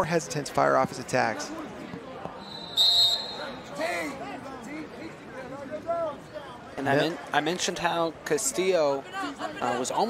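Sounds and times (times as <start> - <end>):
referee whistle blast: 2.4 - 3.6
crowd shouting: 2.4 - 4.3.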